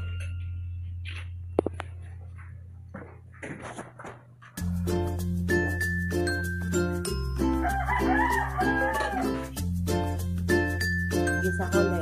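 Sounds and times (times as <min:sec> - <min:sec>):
music with bass and plucked notes: 0:04.6 - 0:12.0
rooster crowing: 0:07.5 - 0:09.6.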